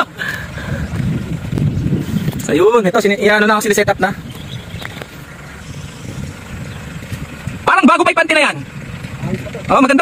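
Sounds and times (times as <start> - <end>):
wind rumbling on microphone: 0.0 - 7.7.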